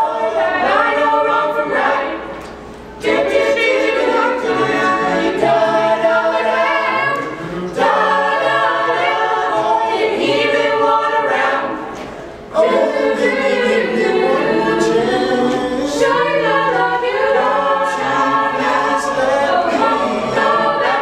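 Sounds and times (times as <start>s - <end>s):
a cappella group singing: 0.0s - 21.0s.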